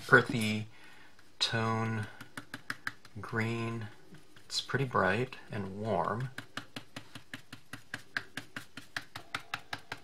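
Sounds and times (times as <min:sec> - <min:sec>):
stylus tapping on cardstock: 0:02.0 - 0:03.2, 0:06.2 - 0:10.0.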